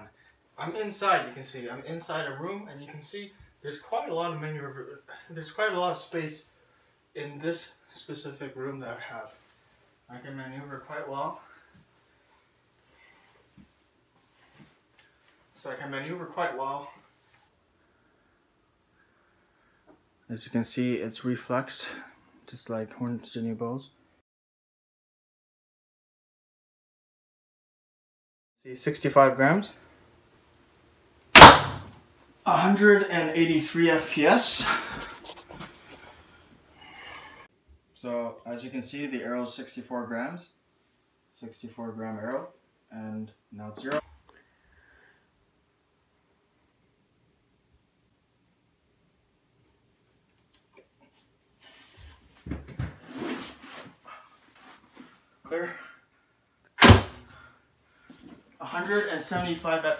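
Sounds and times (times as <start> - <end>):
crossbow shot: 31.4 - 31.9, 56.8 - 57.3.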